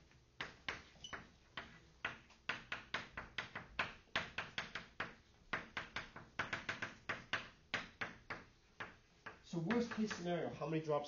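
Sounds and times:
chalk writing on blackboard: 0.4 - 10.5.

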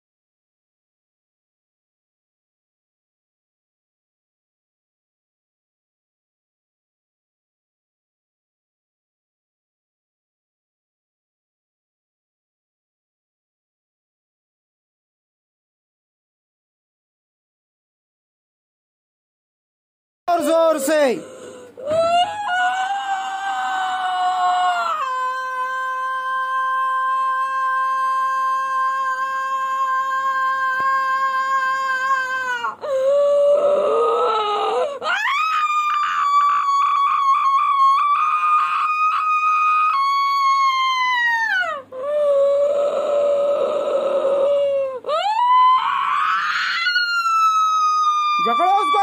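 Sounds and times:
woman screaming and wailing: 20.3 - 49.0.

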